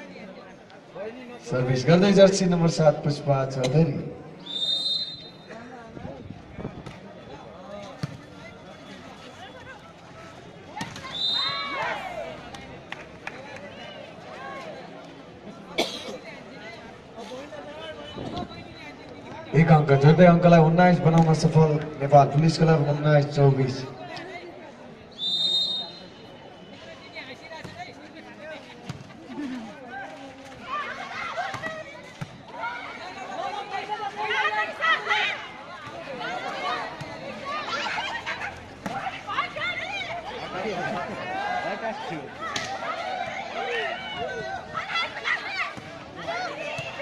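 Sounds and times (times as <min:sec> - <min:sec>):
crowd murmur: 0:00.0 - 0:47.0
referee's whistle blast: 0:04.4 - 0:05.5, 0:11.0 - 0:11.6, 0:25.2 - 0:26.8.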